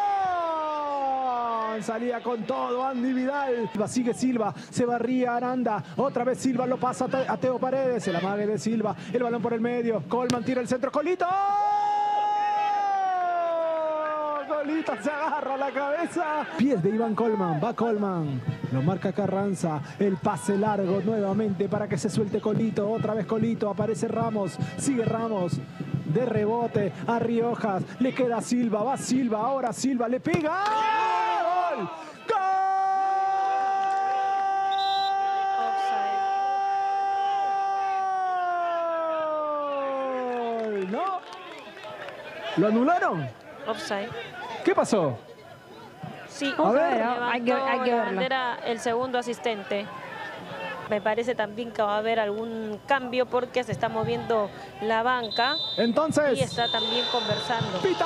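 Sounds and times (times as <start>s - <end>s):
commentator's long shouted goal cry: 0.0s - 3.8s, 11.2s - 18.8s, 30.5s - 40.6s, 55.3s - 58.0s
faint crowd noise: 0.0s - 58.0s.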